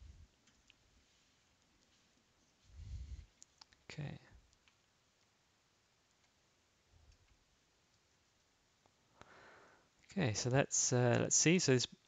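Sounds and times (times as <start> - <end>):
faint computer clicks: 11.1 - 11.3.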